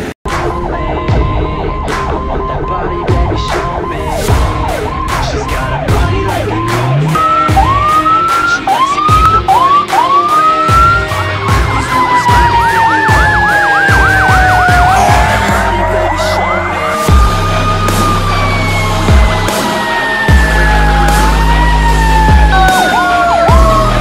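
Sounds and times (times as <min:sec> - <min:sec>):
emergency vehicle sirens: 0:00.0 - 0:24.0.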